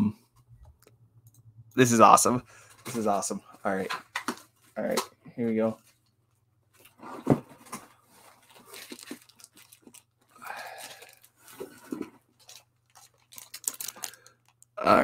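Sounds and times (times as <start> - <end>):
packing rustling in cardboard box: 6.9 - 10.1.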